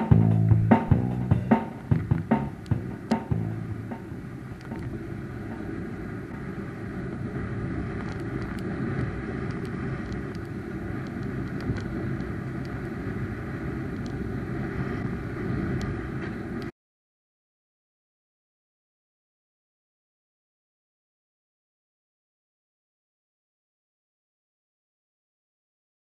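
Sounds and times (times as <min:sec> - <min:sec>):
snowboard gliding over snow: 0:00.0 - 0:16.7
wind on microphone: 0:00.0 - 0:16.7.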